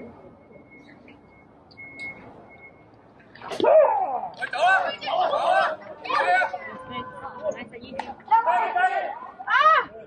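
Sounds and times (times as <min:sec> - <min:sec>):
crowd shouting: 0:03.6 - 0:10.0.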